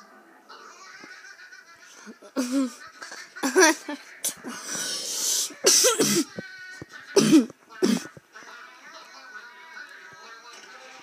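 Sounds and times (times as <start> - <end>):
hissing breath: 4.5 - 5.7
person coughing: 5.6 - 6.4, 7.2 - 8.1.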